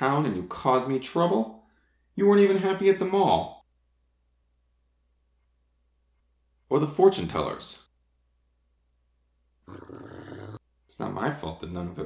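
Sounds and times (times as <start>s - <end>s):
man growling: 9.7s - 10.6s.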